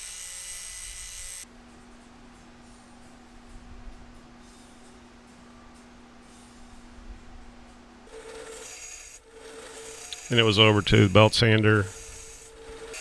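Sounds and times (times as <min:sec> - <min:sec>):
belt sander grinding steel: 0:00.0 - 0:01.4, 0:08.1 - 0:13.0
faint steady hum: 0:01.4 - 0:08.5.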